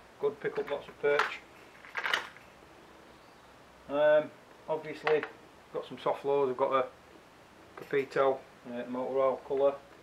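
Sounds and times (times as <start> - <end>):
plastic fishing lures rattling: 1.7 - 2.4.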